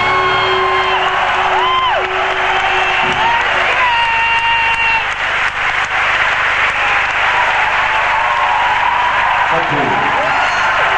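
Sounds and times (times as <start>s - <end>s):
crowd applauding and cheering: 0.0s - 10.9s.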